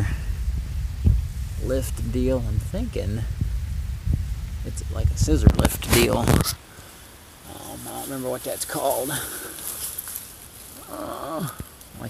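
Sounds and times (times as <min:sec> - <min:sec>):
weeds and brush rustling: 0:00.0 - 0:12.0.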